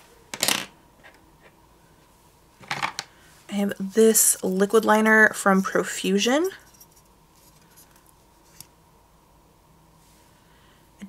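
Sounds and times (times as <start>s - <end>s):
pencil clattering on tabletop: 0.3s - 1.2s, 2.6s - 3.1s.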